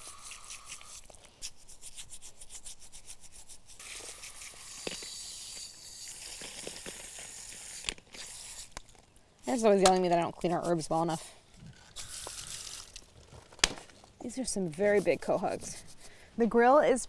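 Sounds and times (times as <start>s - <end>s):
brush scrubbing clams: 0.0s - 8.8s, 14.3s - 16.2s
hose water running: 3.8s - 8.8s.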